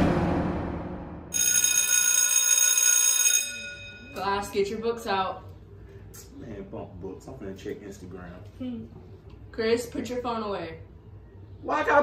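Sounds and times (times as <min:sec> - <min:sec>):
crash sound effect: 0:00.0 - 0:01.4
electric bell ringing: 0:01.3 - 0:04.8.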